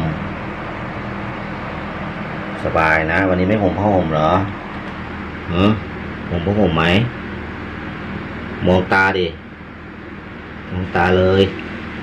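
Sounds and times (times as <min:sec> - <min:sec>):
electric fan running: 0:00.0 - 0:12.0
faint low hum: 0:00.0 - 0:12.0.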